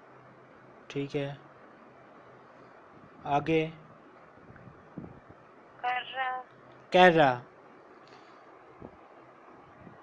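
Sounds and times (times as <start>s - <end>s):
low background hiss: 0.0s - 10.0s
woman reading aloud: 5.8s - 6.5s.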